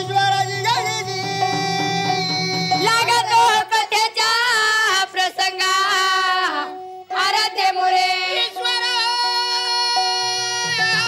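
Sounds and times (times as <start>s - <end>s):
low instrumental accompaniment: 0.0s - 3.6s
women singing: 0.0s - 11.0s.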